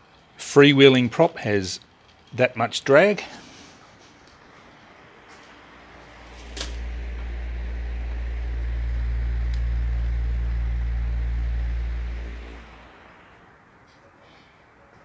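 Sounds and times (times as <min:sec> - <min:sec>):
fan humming: 0:03.4 - 0:13.9
sharp click: 0:06.4 - 0:06.9.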